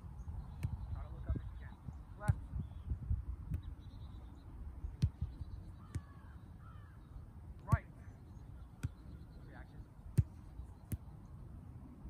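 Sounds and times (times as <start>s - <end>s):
faint birds calling: 0.0s - 11.7s
soccer ball kicks: 0.5s - 1.0s, 2.2s - 2.8s, 3.4s - 3.8s, 4.9s - 6.3s, 7.6s - 7.9s, 8.7s - 9.2s, 10.1s - 11.2s.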